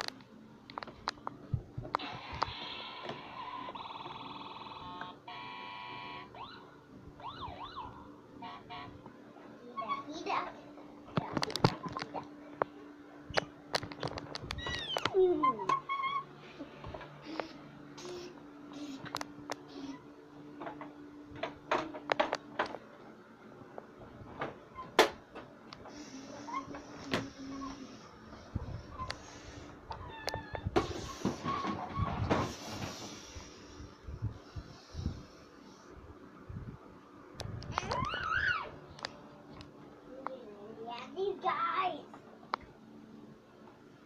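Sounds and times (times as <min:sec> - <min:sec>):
steady low hum: 0:00.0 - 0:44.0.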